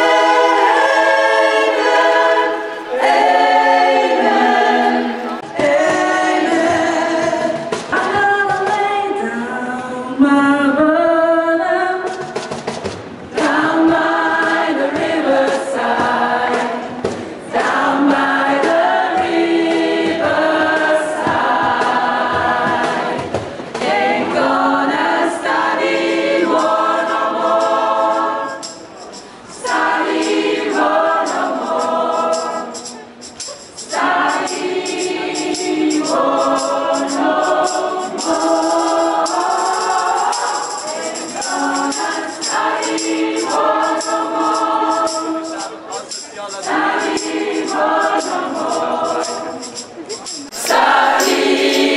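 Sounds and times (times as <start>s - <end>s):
choir singing: 0.0s - 7.8s, 13.4s - 28.8s, 29.6s - 33.0s, 33.8s - 45.5s, 46.6s - 49.8s, 50.5s - 51.9s
woman singing into a microphone: 5.4s - 12.2s.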